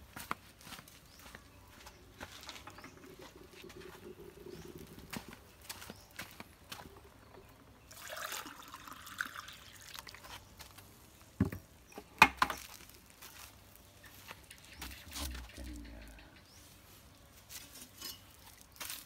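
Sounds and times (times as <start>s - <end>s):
water pouring and splashing: 7.9s - 10.4s.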